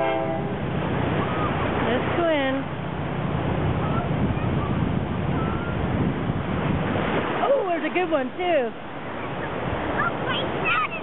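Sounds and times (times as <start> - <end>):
ocean surf rushing and foaming: 0.0 - 11.0
wind buffeting microphone: 0.0 - 11.0.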